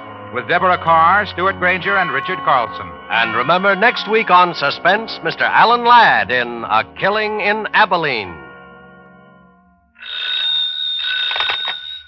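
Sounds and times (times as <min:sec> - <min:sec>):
electric bell ringing: 0:10.0 - 0:12.0.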